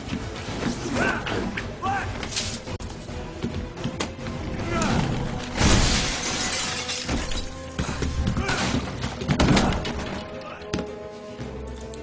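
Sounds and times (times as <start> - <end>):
dramatic film score music: 0.0 - 12.0
loud crash with shattering: 5.6 - 7.5.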